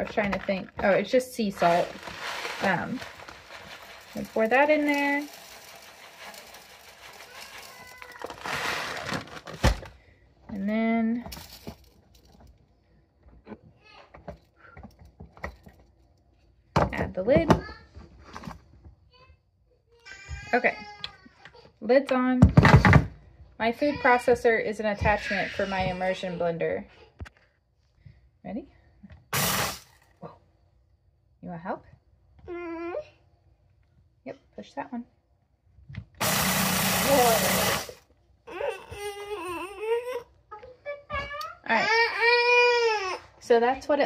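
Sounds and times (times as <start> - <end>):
plastic bag crinkling: 0.0 - 9.9
blender chopper grinding: 1.6 - 8.9, 29.4 - 29.8, 36.2 - 38.0
salt pouring hiss: 1.7 - 8.0, 29.4 - 29.9, 36.2 - 38.0.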